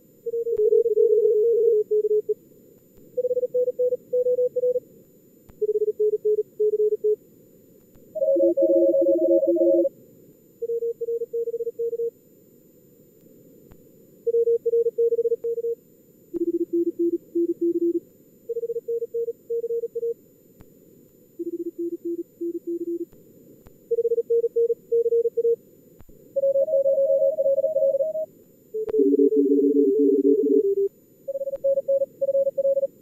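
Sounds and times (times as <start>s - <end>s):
morse code tones: 8.2s - 9.9s, 26.4s - 28.2s, 28.8s - 32.9s.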